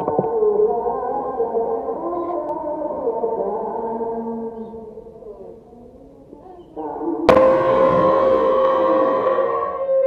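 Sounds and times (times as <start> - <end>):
air rifle shot: 7.3 - 9.0
sustained drone-like music: 7.3 - 10.0.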